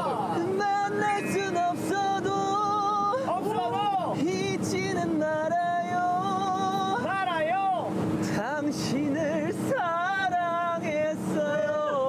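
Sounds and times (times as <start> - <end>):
man singing loudly: 0.0 - 3.2
motorboat engine: 0.0 - 12.0
wind: 0.0 - 12.0.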